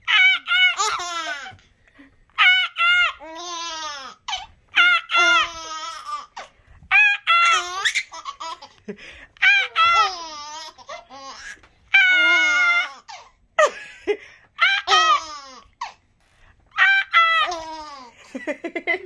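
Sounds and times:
baby laughing: 0.0 - 1.6, 2.4 - 13.7, 14.6 - 16.0, 16.8 - 19.0.

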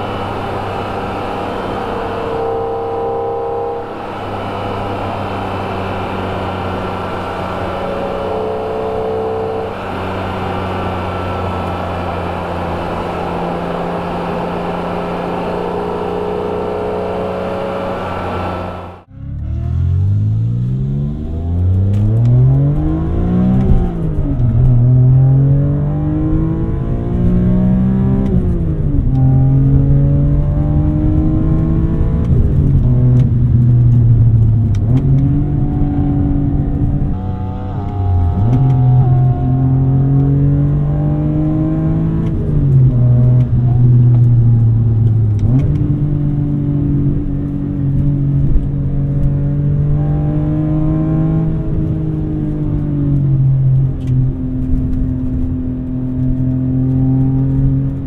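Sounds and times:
car engine accelerating: 0.0 - 58.0.

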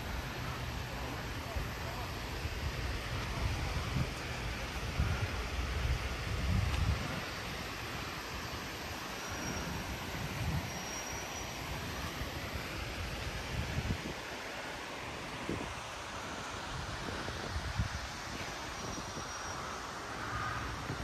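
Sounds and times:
even rushing street noise: 0.0 - 21.0.

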